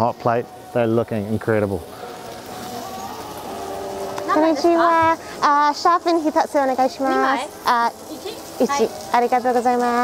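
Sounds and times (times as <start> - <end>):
distant voices: 0.0 - 10.0
even hiss: 0.0 - 10.0.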